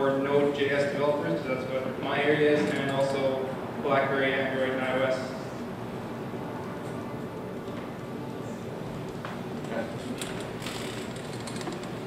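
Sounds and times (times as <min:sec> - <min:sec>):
murmur of people in a room: 0:00.0 - 0:12.0.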